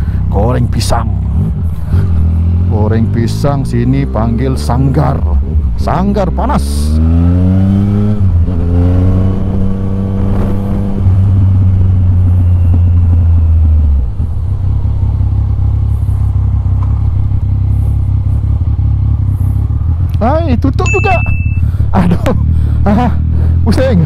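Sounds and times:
motorcycle engine accelerating: 0:00.0 - 0:24.0.

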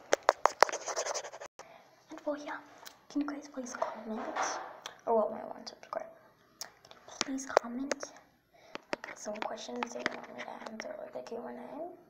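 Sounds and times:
scratchy rub on microphone: 0:00.0 - 0:01.5
plastic toy tapping on microphone: 0:08.7 - 0:10.8.

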